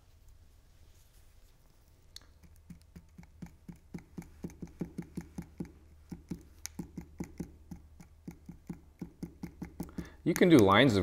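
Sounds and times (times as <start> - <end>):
glue bottle tapping on cardstock: 2.4 - 10.5.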